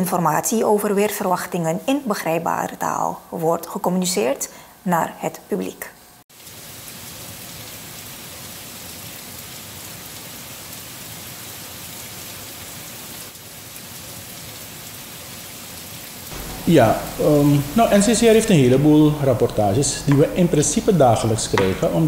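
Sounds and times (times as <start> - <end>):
heavy rain falling: 16.2 - 22.0.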